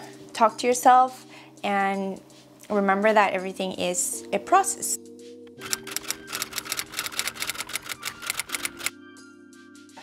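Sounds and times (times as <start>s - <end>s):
soft background music: 0.0s - 10.0s
typewriter key clicks: 5.7s - 8.9s.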